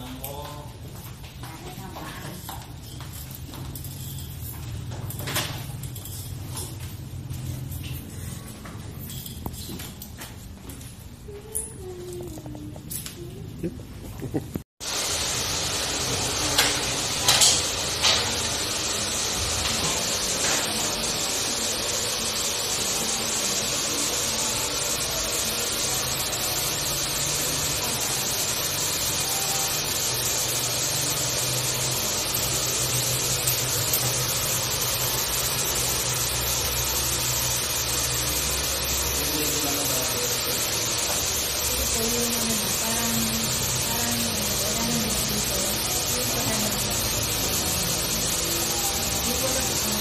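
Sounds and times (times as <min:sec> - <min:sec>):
steady airy hiss: 0:14.8 - 0:50.0.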